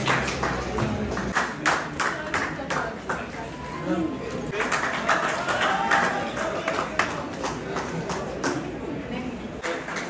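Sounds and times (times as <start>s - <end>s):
hand clapping: 0.0s - 2.9s.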